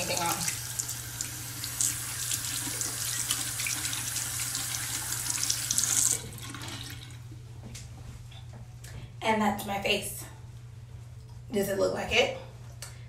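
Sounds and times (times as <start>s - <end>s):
tap water running into sink: 0.0s - 7.2s.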